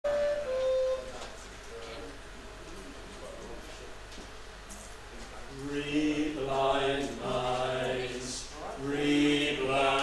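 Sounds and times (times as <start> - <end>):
group singing in harmony: 5.6 - 10.0.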